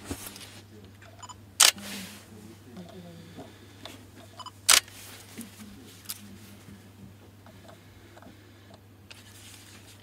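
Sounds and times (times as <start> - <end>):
camera shutter clack: 4.7 - 4.9.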